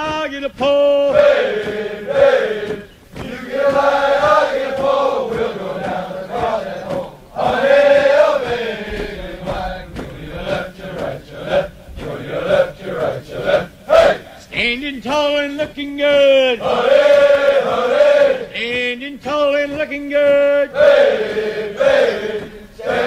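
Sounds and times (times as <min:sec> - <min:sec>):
men chanting a military cadence: 0:00.0 - 0:23.0.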